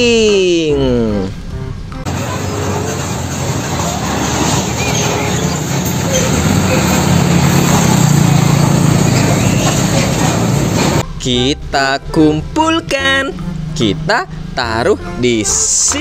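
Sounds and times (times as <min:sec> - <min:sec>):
street traffic noise: 0:00.0 - 0:16.0
truck engine humming: 0:00.0 - 0:16.0.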